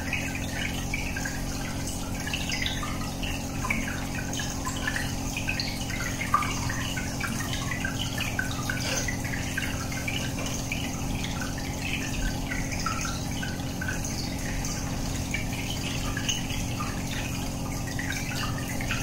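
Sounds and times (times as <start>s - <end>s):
aquarium bubbles popping: 0.0s - 19.0s
steady low hum: 0.0s - 19.0s.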